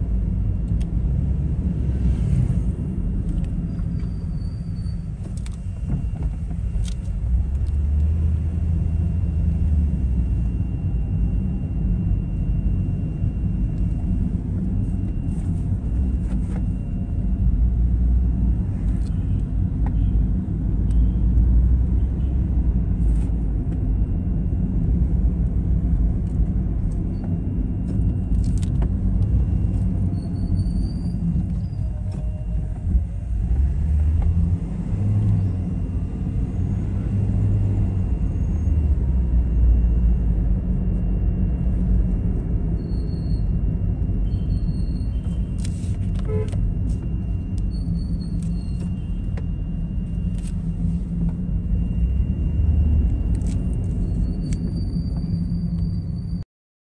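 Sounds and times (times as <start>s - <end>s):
cars rumbling on dirt road: 14.0s - 42.8s.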